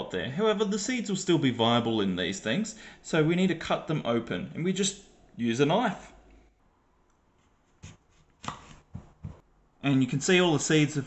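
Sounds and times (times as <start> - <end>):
knife cutting cucumber on board: 7.8 - 9.4.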